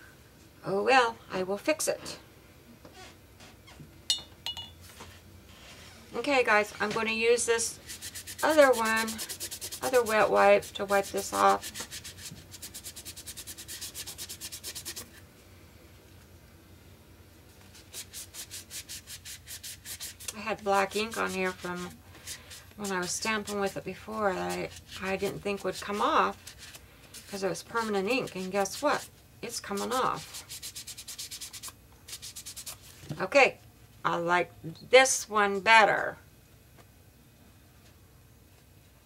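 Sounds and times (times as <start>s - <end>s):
wet wipe scrubbing: 7.7s - 15.2s, 17.6s - 33.0s.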